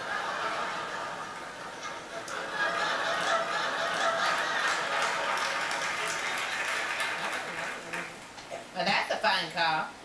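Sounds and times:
audience laughing: 0:00.0 - 0:08.2
audience clapping: 0:00.7 - 0:08.5.

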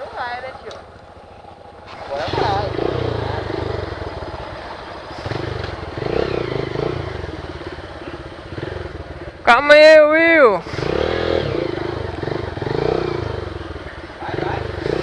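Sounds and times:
motorcycle engines revving: 0:00.0 - 0:15.0.

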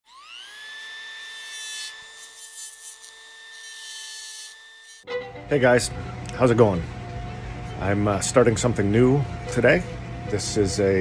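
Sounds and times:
rotary carving tool whine: 0:00.0 - 0:11.0.

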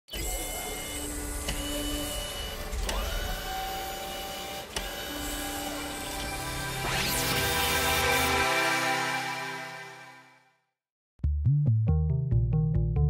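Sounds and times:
small electric motors whirring: 0:00.1 - 0:08.4
sharp mechanical clicks: 0:00.2 - 0:06.4
rising motor whine: 0:00.2 - 0:10.1.

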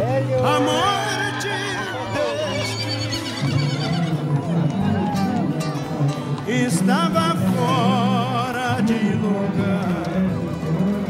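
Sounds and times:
music: 0:00.0 - 0:11.0
horse whinnying: 0:01.1 - 0:05.5.

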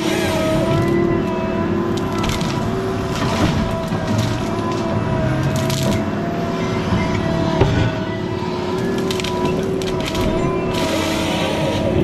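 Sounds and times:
diesel engine running under load: 0:00.0 - 0:12.0
hydraulic whine: 0:00.0 - 0:12.0.

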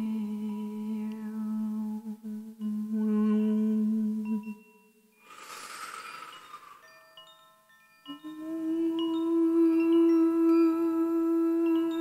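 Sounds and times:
chime shimmering rush: 0:05.2 - 0:08.2
clear chime tones ringing: 0:06.0 - 0:10.7.

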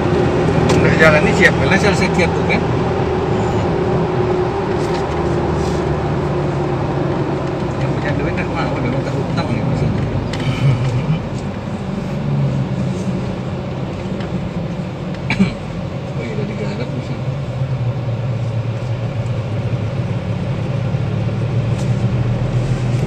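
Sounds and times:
car engine: 0:00.0 - 0:23.0
tyre road noise: 0:00.0 - 0:23.0.

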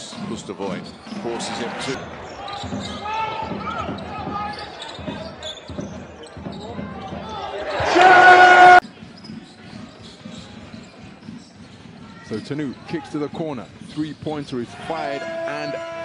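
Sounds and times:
crowd noise: 0:00.0 - 0:16.0
sneaker squeaks on court: 0:03.8 - 0:07.3, 0:09.0 - 0:12.8
arena buzzer: 0:07.9 - 0:08.8.

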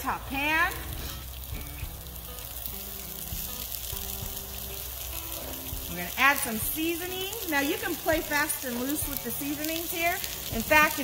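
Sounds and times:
cauliflower sizzling in a pan: 0:00.0 - 0:11.0.

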